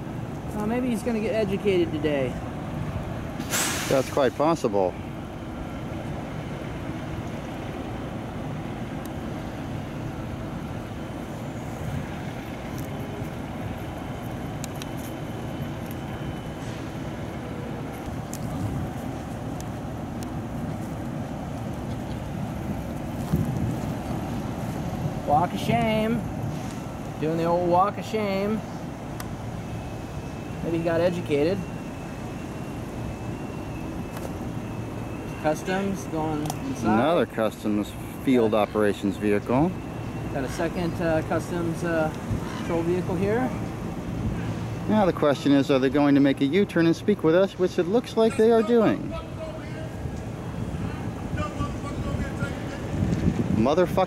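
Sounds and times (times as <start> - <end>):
traffic rumble: 0.0 - 54.0
faint high whine: 27.1 - 47.4
sharp tick: 36.4 - 36.6.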